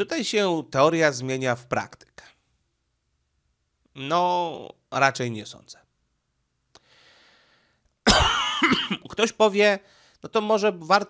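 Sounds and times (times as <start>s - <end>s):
man breathing softly: 6.7s - 7.9s, 9.8s - 10.2s
man coughing: 8.1s - 9.2s.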